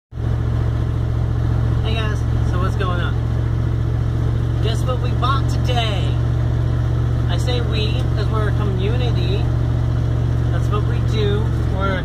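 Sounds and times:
vehicle engine humming: 0.1 - 12.0.

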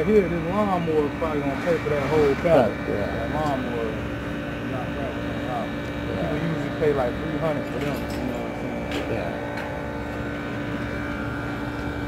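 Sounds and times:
machinery hum with whining tones: 0.0 - 12.0.

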